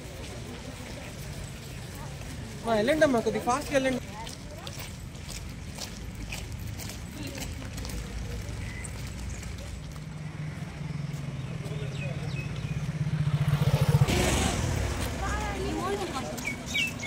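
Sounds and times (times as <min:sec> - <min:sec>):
vehicle engine passing: 0:07.6 - 0:17.0.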